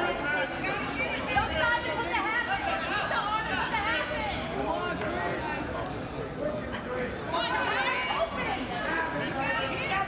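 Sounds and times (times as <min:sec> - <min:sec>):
indistinct crowd chatter: 0:00.0 - 0:10.0.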